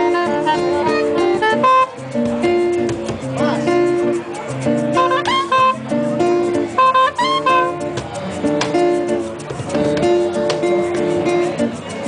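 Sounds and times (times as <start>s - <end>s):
saxophone tones: 0.0s - 2.0s, 4.9s - 6.0s, 6.7s - 8.0s
acoustic guitar picking notes: 0.0s - 12.0s
hand percussion: 0.0s - 12.0s.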